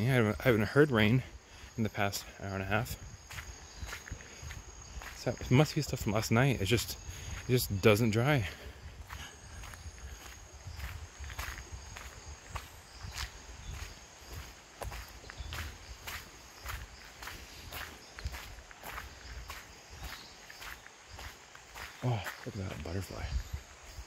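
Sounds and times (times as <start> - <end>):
footsteps on wet gravel: 0.0 - 24.0.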